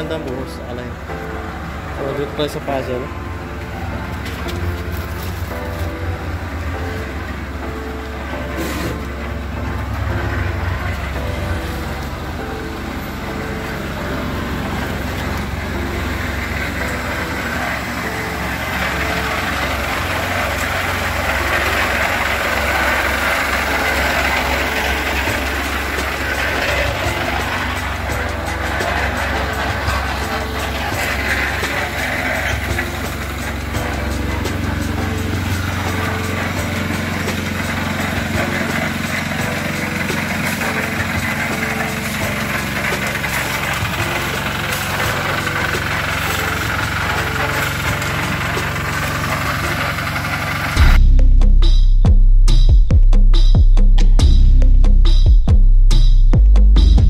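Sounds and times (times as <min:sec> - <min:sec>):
concrete mixer running: 0:00.0 - 0:51.0.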